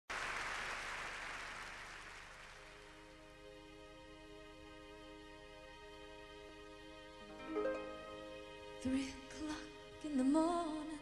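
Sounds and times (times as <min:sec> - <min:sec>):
audience applauding: 0:00.0 - 0:03.0.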